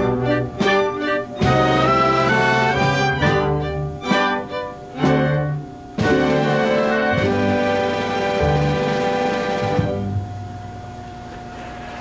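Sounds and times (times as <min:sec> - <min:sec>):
orchestra strings playing chords: 0:00.0 - 0:10.6.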